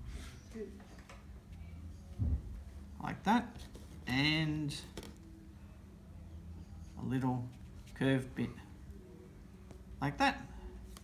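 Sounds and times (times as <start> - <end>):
low room hum: 0.0 - 11.0
soft low thump: 2.2 - 2.6.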